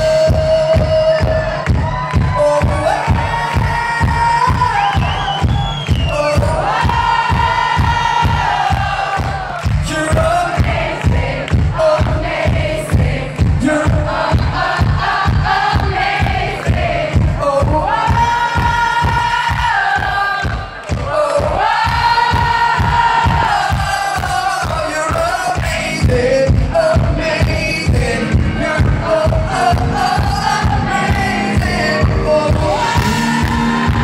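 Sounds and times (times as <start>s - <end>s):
live pop band playing: 0.0s - 34.0s
kick drum: 0.1s - 34.0s
crowd singing along: 2.7s - 34.0s.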